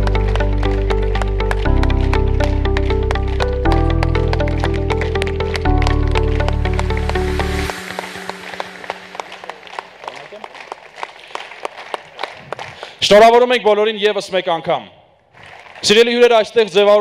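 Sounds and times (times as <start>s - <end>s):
music with deep bass: 0.0s - 9.9s
audience applause: 0.0s - 13.1s, 15.4s - 16.2s.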